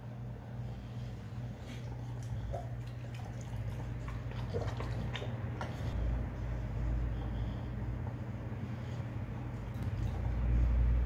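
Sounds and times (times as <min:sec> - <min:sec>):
steady low hum: 0:00.0 - 0:11.0
dog chewing wet food: 0:01.6 - 0:06.1.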